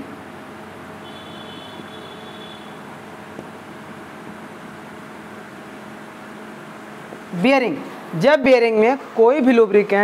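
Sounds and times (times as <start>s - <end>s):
fan humming and hissing: 0.0s - 10.0s.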